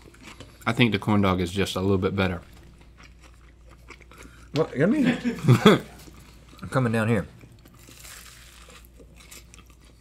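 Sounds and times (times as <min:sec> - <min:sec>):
person chewing: 0:00.0 - 0:00.9, 0:02.5 - 0:04.7, 0:07.3 - 0:10.0.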